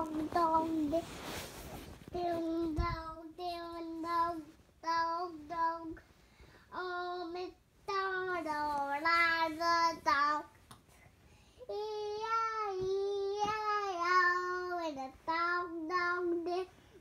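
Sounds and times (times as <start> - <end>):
young child singing: 0.0 - 1.1, 2.1 - 6.1, 6.7 - 10.6, 11.6 - 17.0.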